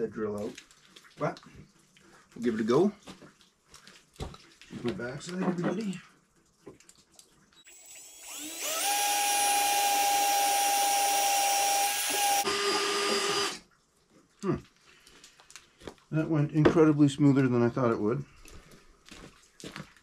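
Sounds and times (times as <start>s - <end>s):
power drill whining: 7.6s - 13.6s.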